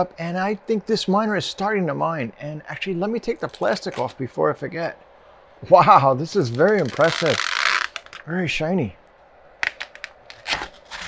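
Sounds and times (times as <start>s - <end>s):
plastic bag crinkling: 3.4s - 4.2s, 6.4s - 8.2s, 9.6s - 11.0s.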